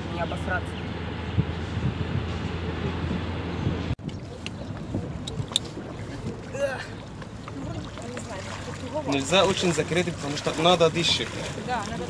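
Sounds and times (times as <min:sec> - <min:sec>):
wind on microphone: 0:00.7 - 0:08.8.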